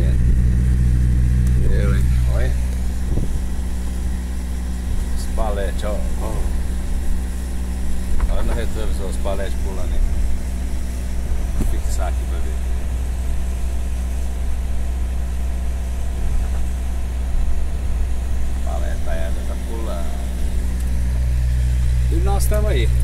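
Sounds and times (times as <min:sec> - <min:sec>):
higher hum: 0:00.0 - 0:23.0
low engine drone: 0:00.0 - 0:23.0.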